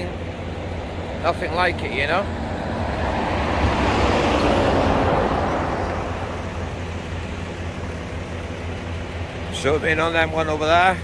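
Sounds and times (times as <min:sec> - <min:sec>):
steady low rumble: 0:00.0 - 0:10.8
vehicle passing on highway: 0:00.1 - 0:09.5.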